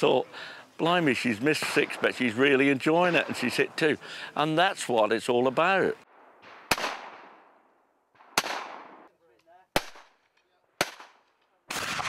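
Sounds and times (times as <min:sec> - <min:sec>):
shotgun shots with echo: 0:06.4 - 0:07.4, 0:08.2 - 0:09.1, 0:09.7 - 0:10.2, 0:10.8 - 0:12.0.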